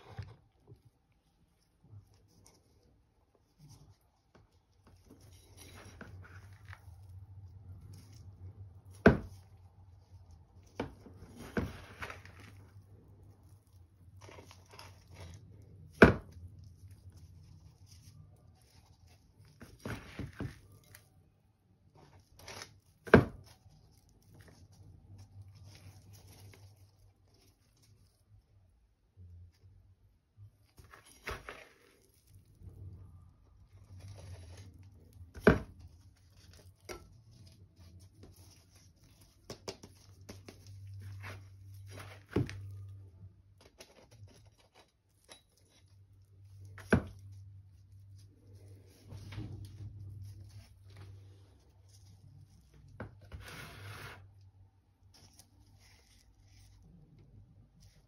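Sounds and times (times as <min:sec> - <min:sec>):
scoop scraping soil in bucket: 0:53.2 - 0:54.4.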